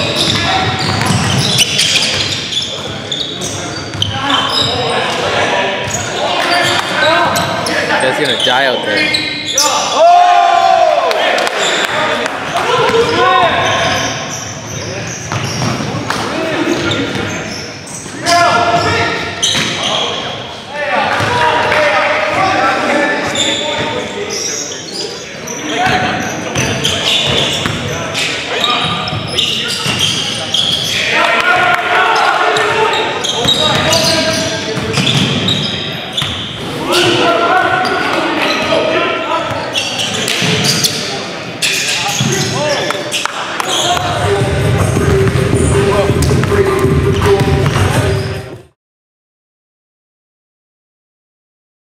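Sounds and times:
indistinct shouting and talk: 0:00.0 - 0:48.7
basketball bouncing on court: 0:00.2 - 0:02.4, 0:25.9 - 0:27.9, 0:29.8 - 0:30.2, 0:32.6 - 0:36.4, 0:43.6 - 0:48.3.

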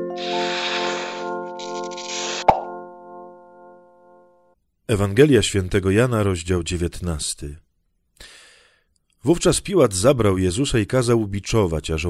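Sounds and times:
short hissing swish: 0:00.2 - 0:02.5
sharp pop: 0:02.4 - 0:02.7
synthesized chord tones: 0:02.4 - 0:04.6.

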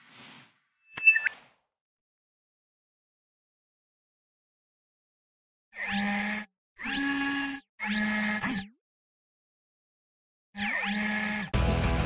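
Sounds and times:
whoosh: 0:00.0 - 0:01.4
two-note electronic chirp: 0:00.9 - 0:01.3.

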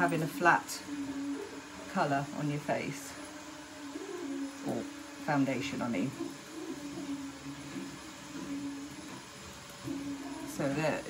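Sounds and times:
vacuum cleaner humming: 0:00.0 - 0:11.0.

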